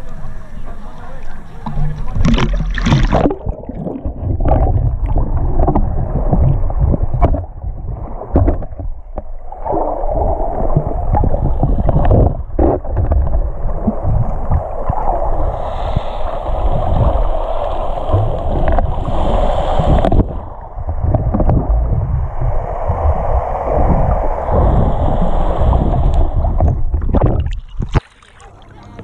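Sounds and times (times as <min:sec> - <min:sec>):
underwater rushing and gurgling: 0:00.0 - 0:29.0.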